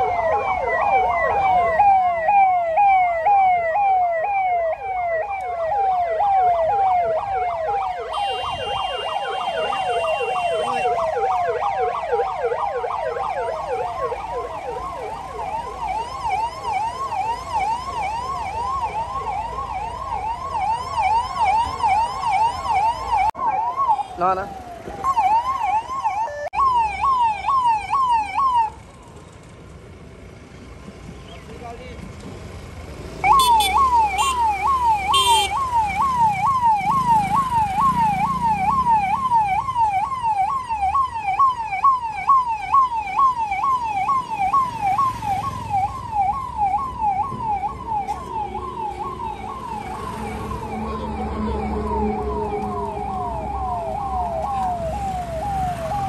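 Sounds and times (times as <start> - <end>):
police siren yelping: 0.0 - 28.9, 33.2 - 56.0
low traffic rumble: 0.0 - 56.0.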